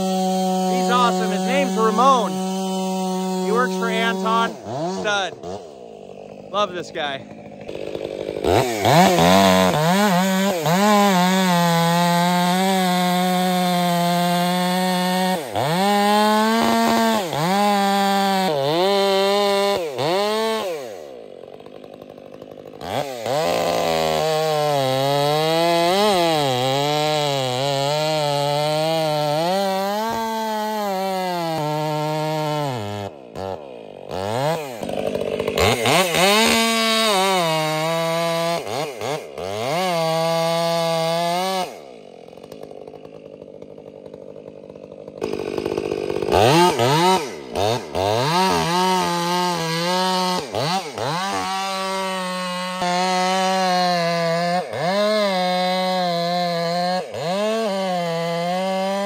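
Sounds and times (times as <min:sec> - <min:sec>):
chainsaw cutting wood: 0:00.0 - 0:59.0.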